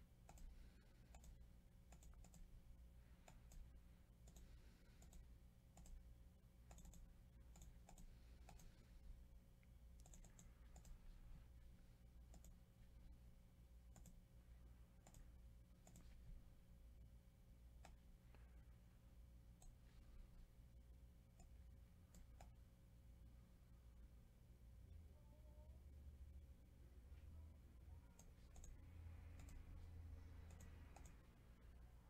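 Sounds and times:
low steady hum: 0:00.0 - 0:32.0
computer mouse and keyboard clicking: 0:00.2 - 0:02.5, 0:03.2 - 0:06.0, 0:06.6 - 0:09.0, 0:10.0 - 0:11.2, 0:12.2 - 0:12.6, 0:13.9 - 0:14.2, 0:15.0 - 0:16.2, 0:28.1 - 0:29.8, 0:30.4 - 0:31.3.

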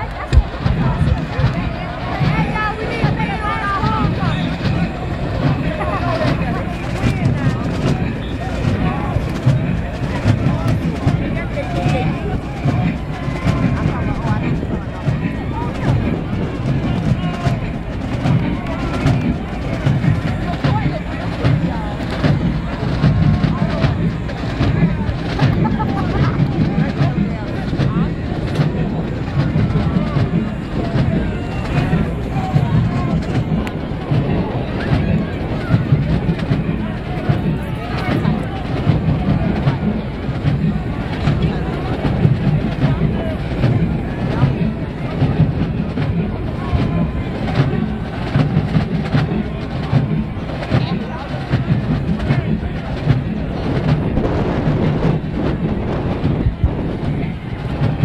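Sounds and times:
crowd chatter: 0:00.0 - 0:58.0
drum strikes: 0:00.0 - 0:58.0
marching band playing: 0:00.0 - 0:58.0.

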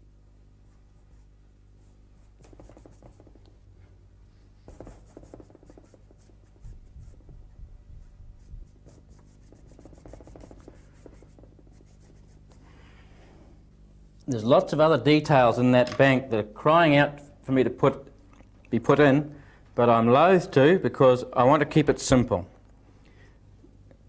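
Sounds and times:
low electrical hum: 0:00.0 - 0:24.0
paintbrush scrubbing on canvas: 0:00.7 - 0:03.4, 0:04.6 - 0:13.5.

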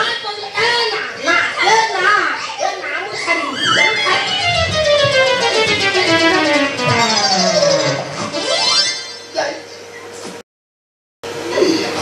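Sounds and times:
high-pitched voices shouting excitedly: 0:03.1 - 0:04.5.

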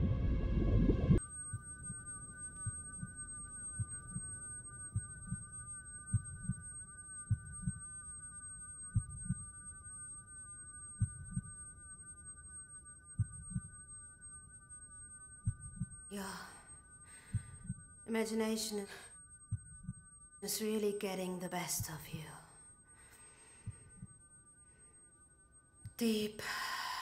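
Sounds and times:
high drone of held tones: 0:00.0 - 0:27.0
heartbeat thumps: 0:03.8 - 0:05.5, 0:06.1 - 0:06.7, 0:07.3 - 0:07.8, 0:09.0 - 0:09.4, 0:11.0 - 0:11.6, 0:13.2 - 0:13.8, 0:15.4 - 0:16.1, 0:17.2 - 0:17.9, 0:19.5 - 0:20.1.

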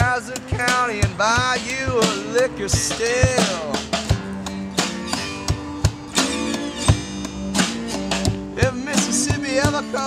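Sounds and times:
acoustic guitars strumming: 0:00.0 - 0:10.0
low thumping beat: 0:00.0 - 0:10.0.

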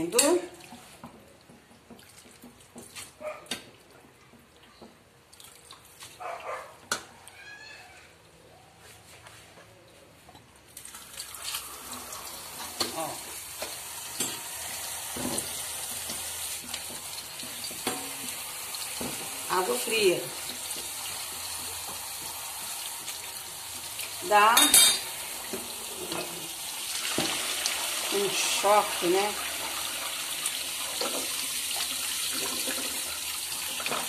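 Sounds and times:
tap water running into colander: 0:10.7 - 0:34.0.

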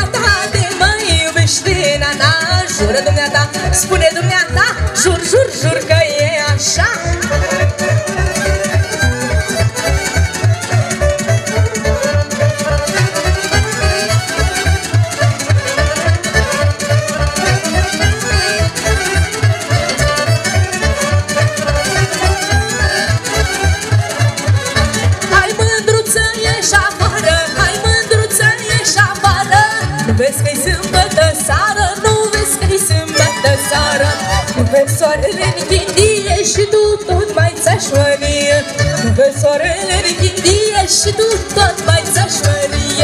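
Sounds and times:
accordion: 0:00.0 - 0:43.0
driving bass beat: 0:00.0 - 0:43.0
violin melody: 0:00.0 - 0:43.0.

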